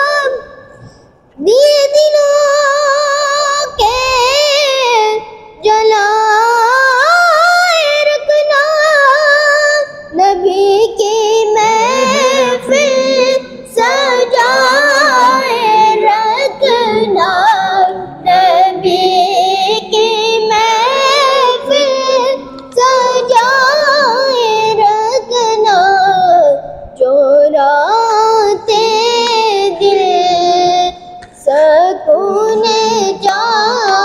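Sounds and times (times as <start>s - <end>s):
boy singing solo: 1.4s - 34.0s.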